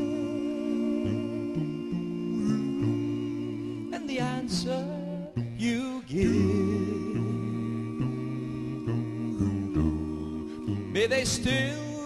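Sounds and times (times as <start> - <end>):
a cappella vocal harmony: 0.0 - 12.0.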